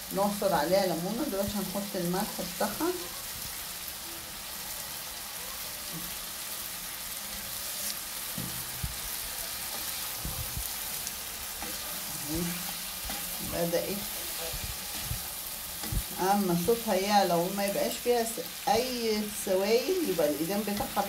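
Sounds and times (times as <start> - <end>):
food sizzling in frying pan: 0.0 - 21.0.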